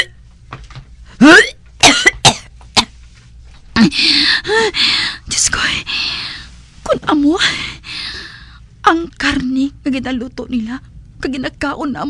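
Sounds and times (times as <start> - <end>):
person coughing and gagging: 1.4 - 2.9.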